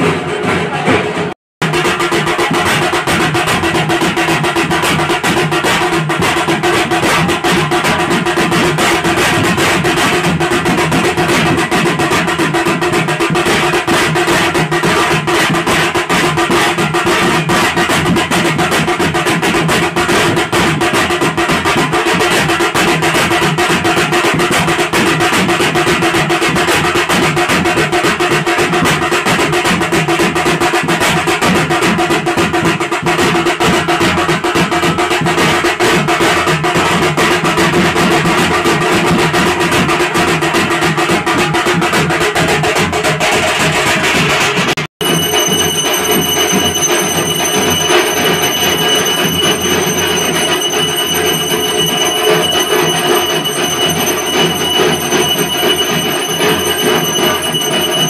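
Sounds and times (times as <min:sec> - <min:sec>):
folk drums played by hand: 0:00.0 - 0:58.0.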